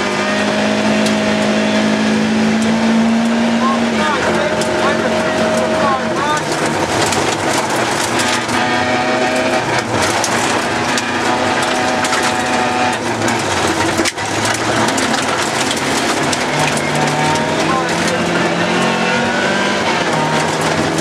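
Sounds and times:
gravel rattling against car underside: 0.0 - 21.0
rally car engine revving: 0.0 - 21.0.

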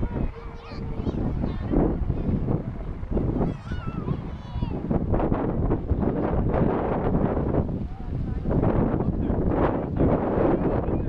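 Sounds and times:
wind rushing across microphone: 0.0 - 11.0.

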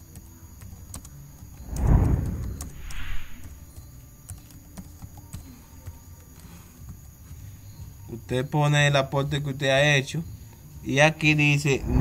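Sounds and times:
computer keyboard typing: 0.0 - 1.6, 3.4 - 7.0
rush of noise: 1.6 - 3.6.

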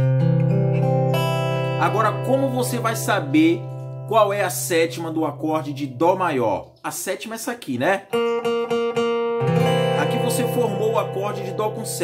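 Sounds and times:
acoustic guitar chord ringing: 0.0 - 6.6, 8.1 - 12.0
acoustic guitar note plucked: 0.0 - 6.7, 8.0 - 12.0.

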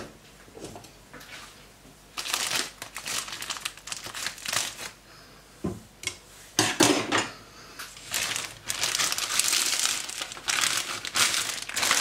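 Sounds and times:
plastic wrapping crinkling: 2.2 - 5.0, 8.0 - 12.0.

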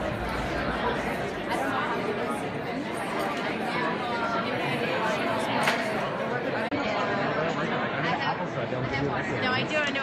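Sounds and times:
background chatter of many voices: 0.0 - 10.0.

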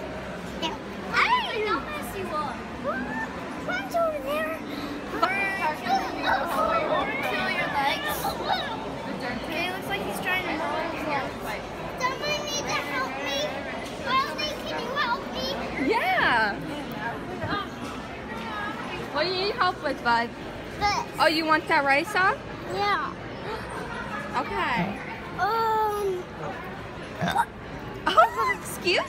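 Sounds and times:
small child babbling: 25.4 - 26.2.

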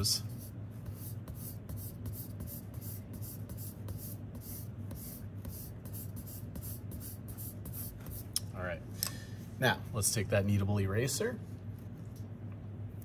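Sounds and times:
pencil scratching on paper: 0.3 - 8.2.

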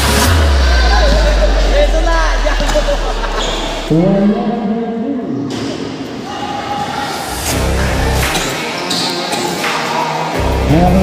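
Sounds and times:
low bass background music: 0.0 - 4.8, 7.4 - 8.6, 10.4 - 11.0
scattered voices: 0.2 - 11.0
sneaker squeaks: 3.4 - 3.9.

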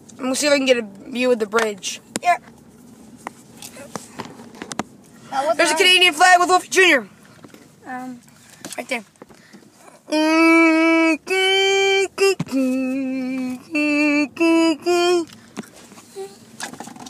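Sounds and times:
person singing a short tune: 10.1 - 15.3.

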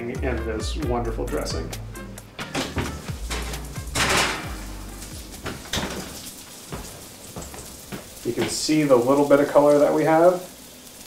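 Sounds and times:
background music: 0.0 - 7.8
oven door opening: 2.4 - 6.4
knocks and clatters: 2.4 - 8.6.

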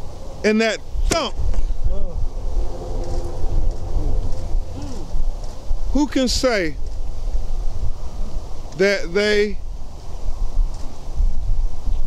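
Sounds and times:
low outdoor rumble: 0.0 - 10.5
faint hum: 1.7 - 6.2
man speaking: 5.9 - 6.8, 8.8 - 9.6.

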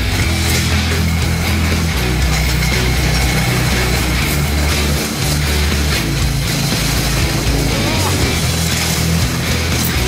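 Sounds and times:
hard rock music: 0.0 - 10.0.

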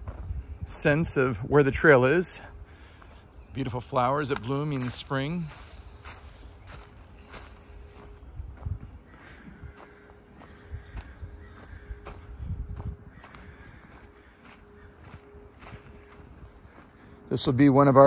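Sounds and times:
footsteps on dry leaves: 0.0 - 18.0.

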